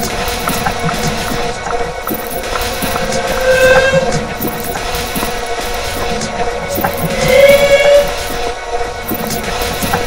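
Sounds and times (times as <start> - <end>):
droning tone: 0.8 - 9.0.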